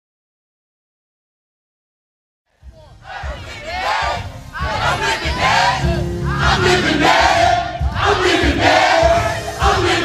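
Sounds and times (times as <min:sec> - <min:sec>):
crowd shouting: 0:02.8 - 0:10.0.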